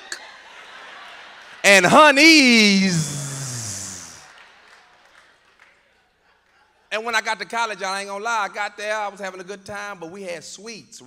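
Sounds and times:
man speaking into a microphone: 1.6 - 4.2.

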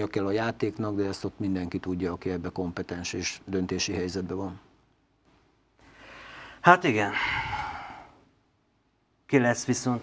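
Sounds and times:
man speaking: 0.0 - 4.7, 6.6 - 7.6, 9.3 - 10.0
man sighing: 7.1 - 8.2.

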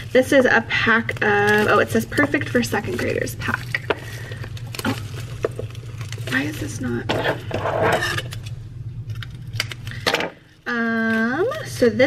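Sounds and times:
plastic wrapping crinkling: 0.0 - 12.0
steady low hum: 0.0 - 12.0.

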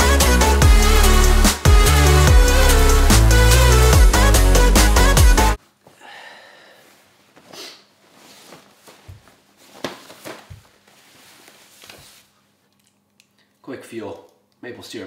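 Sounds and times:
electronic music with a beat: 0.0 - 5.6
faint room hum: 5.6 - 15.0
clothing rustling: 6.8 - 12.6.

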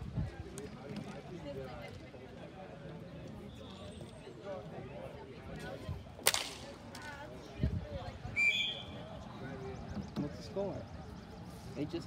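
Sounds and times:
referee whistle blast: 8.4 - 8.9.

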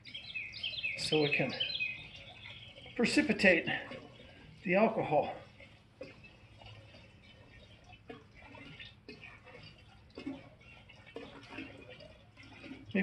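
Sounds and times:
water trickling into jug: 0.0 - 13.0.

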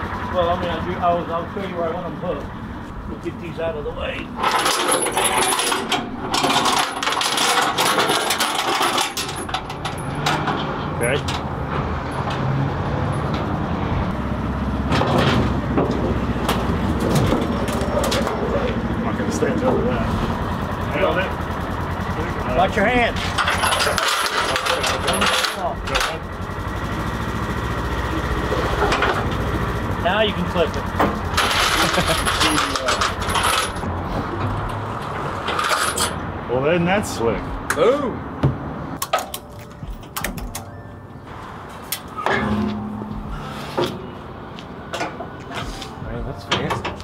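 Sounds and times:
utility vehicle engine running: 0.0 - 36.4
metal chains clinking: 4.4 - 10.4, 23.4 - 25.6, 31.4 - 33.9, 35.5 - 36.2.

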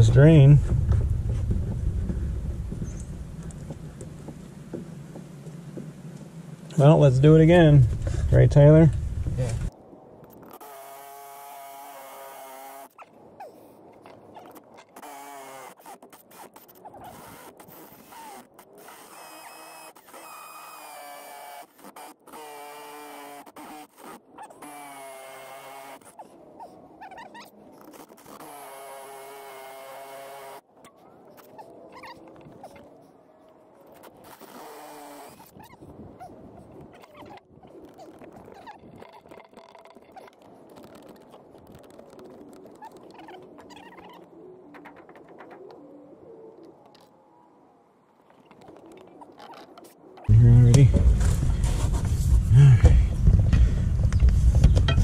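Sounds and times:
power tool whining: 15.0 - 15.9, 17.2 - 26.0, 28.3 - 30.6
scraping and rustling: 50.9 - 52.6.

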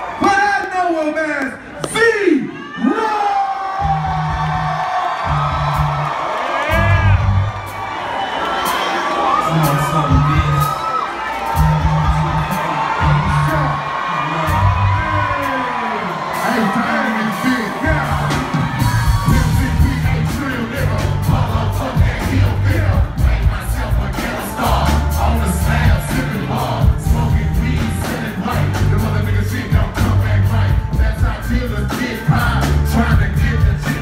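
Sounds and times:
crowd cheering and whooping: 0.0 - 0.8, 2.4 - 30.1
band playing deep bass notes: 6.7 - 7.6, 11.5 - 15.4, 16.3 - 34.0.

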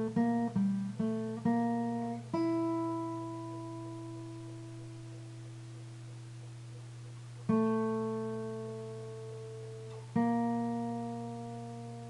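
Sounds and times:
acoustic guitar chord ringing: 0.0 - 6.4, 7.4 - 12.0.

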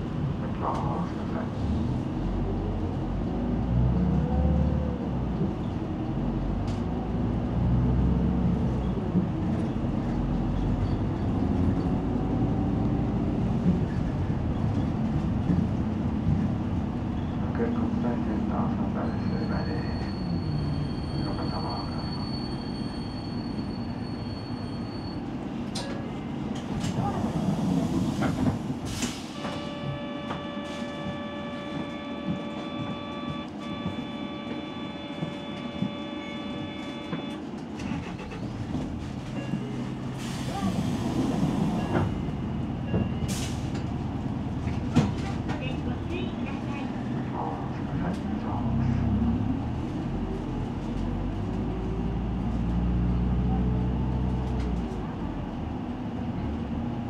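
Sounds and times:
traffic rumble: 0.0 - 57.0.

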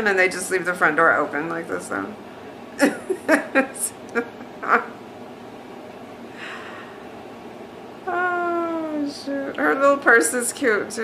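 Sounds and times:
woman laughing: 2.8 - 4.9.

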